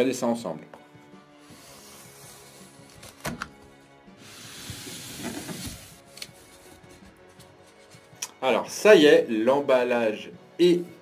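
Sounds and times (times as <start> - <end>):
soft background music: 0.0 - 11.0
packing tape ripping: 2.8 - 3.4.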